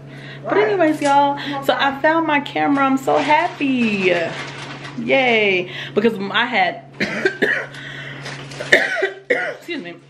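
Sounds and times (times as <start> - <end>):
woman coughing: 7.0 - 7.8, 8.6 - 9.8.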